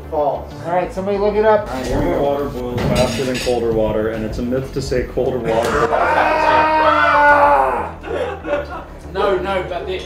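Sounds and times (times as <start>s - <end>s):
person yelling: 5.5s - 8.0s.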